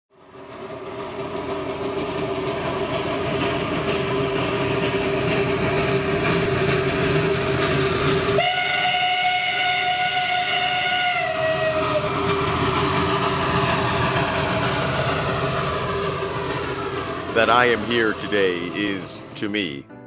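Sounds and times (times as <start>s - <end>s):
steam train rumbling: 0.2s - 19.8s
train whistle blast: 8.4s - 12.2s.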